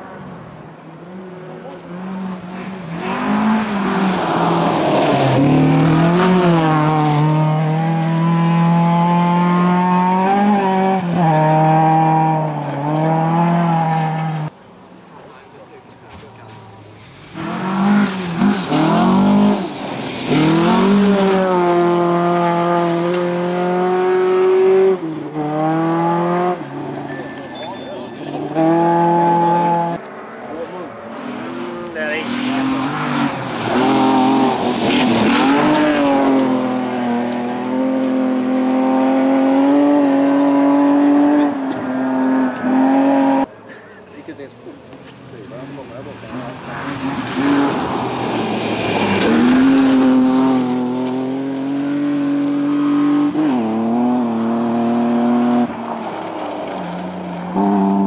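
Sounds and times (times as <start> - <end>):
car engines revving hard: 0.0 - 14.6, 15.7 - 43.5, 44.2 - 58.0
rally cars passing on gravel: 0.0 - 58.0.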